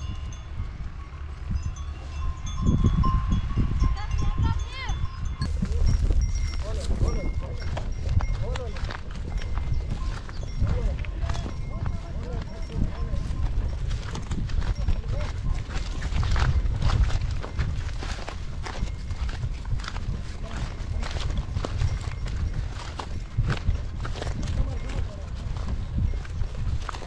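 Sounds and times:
heavy low rumble: 0.0 - 27.0
hooves: 0.0 - 27.0
wooden cart knocking and clattering: 5.4 - 27.0.

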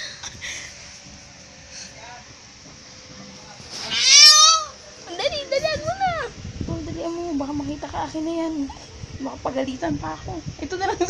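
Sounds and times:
baby squealing: 3.8 - 4.8.

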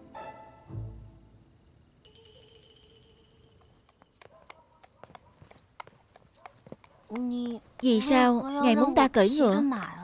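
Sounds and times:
horse hooves clip-clopping: 3.4 - 9.0.

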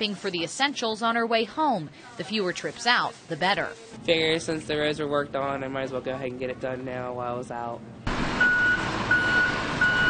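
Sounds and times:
backup alarm beeping: 8.4 - 10.0.

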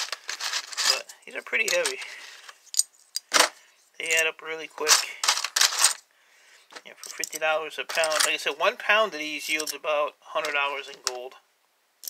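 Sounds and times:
computer chips clattering in plastic: 0.0 - 2.1, 4.9 - 6.0.

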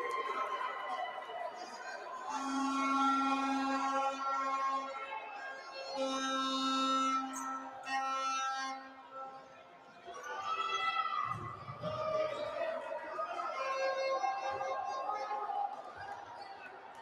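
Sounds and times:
hum of indoor crowd: 0.0 - 17.0.

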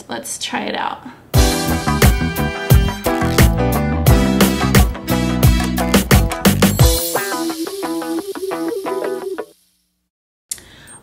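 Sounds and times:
quick repeated short notes: 1.6 - 7.7.

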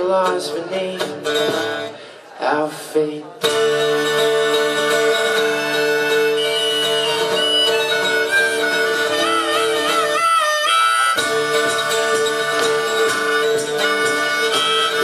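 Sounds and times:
acoustic guitar: 0.0 - 15.0
harmonica: 4.0 - 15.0.

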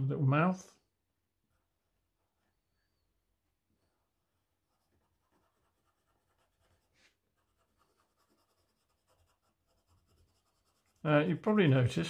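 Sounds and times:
oil pastel scratching on paper: 3.8 - 11.2.

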